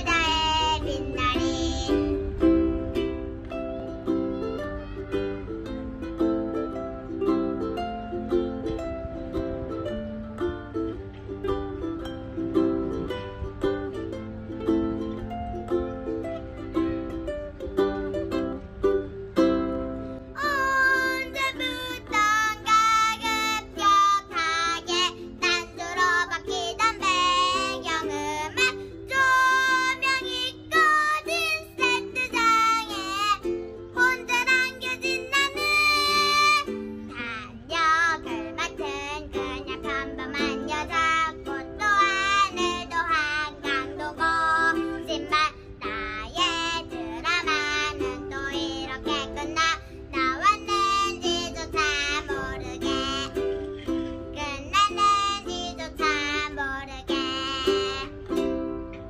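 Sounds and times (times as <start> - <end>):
girl singing pop song: 0.0 - 6.2, 20.2 - 59.0
ukuleles playing: 0.0 - 59.0.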